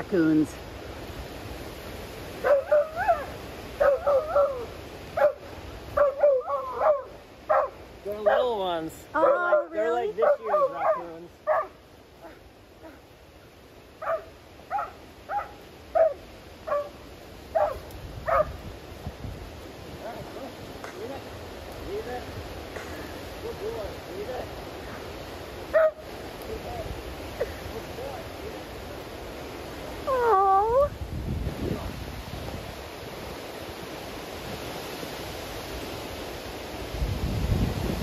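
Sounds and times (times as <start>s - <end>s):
dog yelps: 2.4s - 5.4s, 6.0s - 7.8s, 9.2s - 13.0s, 14.0s - 17.0s, 17.6s - 18.6s, 25.7s - 26.0s, 30.0s - 31.0s
dog whining and yipping: 2.5s - 4.7s, 30.1s - 30.9s.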